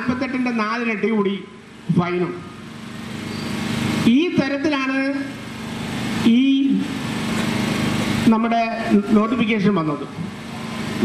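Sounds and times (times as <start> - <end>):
small engine running: 2.6 - 11.0.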